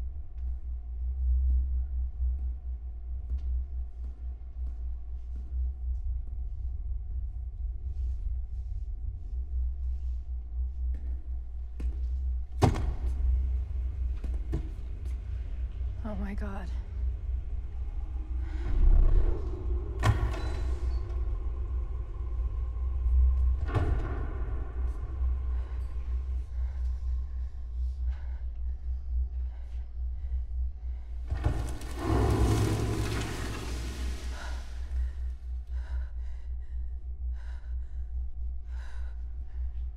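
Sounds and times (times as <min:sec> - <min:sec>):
low rumbling drone: 0:00.0 - 0:39.9.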